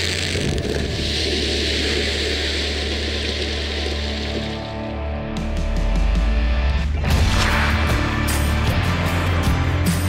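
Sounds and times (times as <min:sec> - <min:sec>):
background music: 0:03.9 - 0:10.0.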